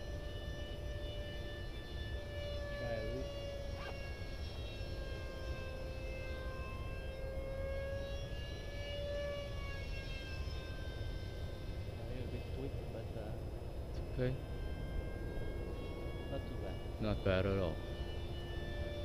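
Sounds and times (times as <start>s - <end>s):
model jet fan whining: 0.0s - 19.0s.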